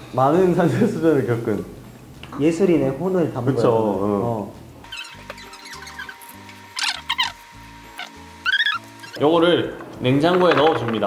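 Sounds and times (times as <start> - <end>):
squeaky cartoon sound effects: 4.9 - 9.2.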